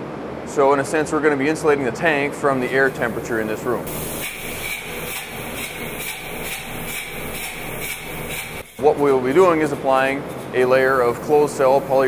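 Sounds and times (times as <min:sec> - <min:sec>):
spray foam gun hissing: 0:02.7 - 0:08.9.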